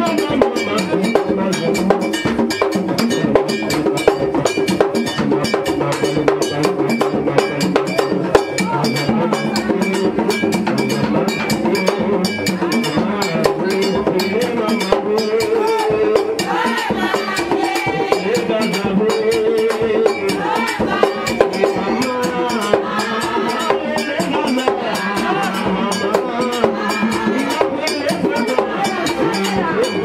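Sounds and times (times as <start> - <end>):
hand drums: 0.0 - 30.0
metal bell struck rhythmically: 0.0 - 30.0.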